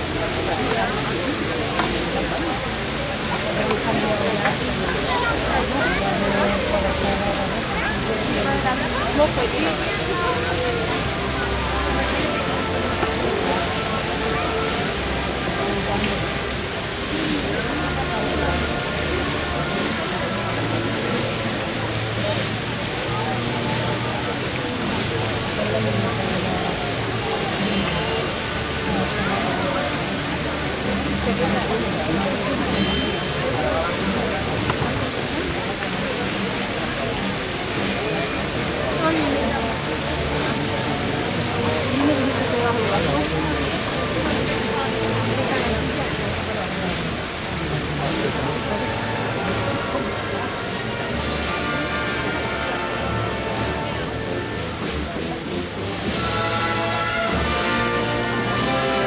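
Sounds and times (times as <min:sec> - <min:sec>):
fountain water splashing: 0:00.0 - 0:59.0
low sustained music notes: 0:00.0 - 0:59.0
murmur of crowd voices: 0:00.0 - 0:59.0.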